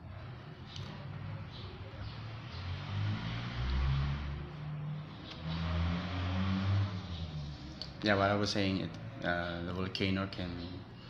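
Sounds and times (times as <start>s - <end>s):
vehicle engine revving: 1.1s - 9.2s.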